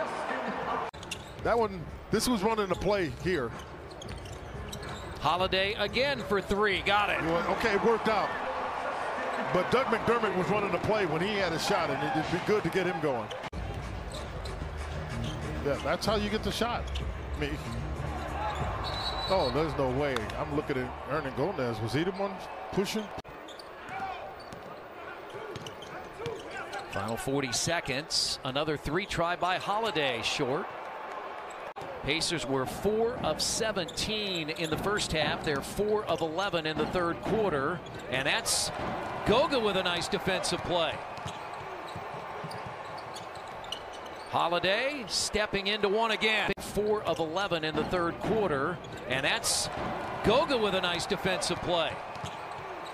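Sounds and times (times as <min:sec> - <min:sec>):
sneaker squeak: 0:01.0 - 0:01.6, 0:02.6 - 0:06.4, 0:13.2 - 0:19.8, 0:23.3 - 0:27.3, 0:33.8 - 0:34.9, 0:37.8 - 0:38.8, 0:41.0 - 0:44.4, 0:48.8 - 0:49.8, 0:52.0 - 0:52.9
basketball bouncing: 0:41.0 - 0:44.0, 0:51.5 - 0:52.8.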